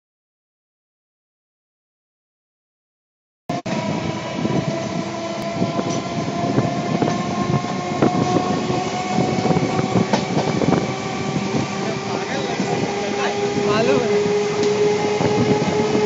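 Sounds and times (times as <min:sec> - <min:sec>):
train rumble: 0:03.5 - 0:16.0
train wheels clicking over rails: 0:03.7 - 0:16.0.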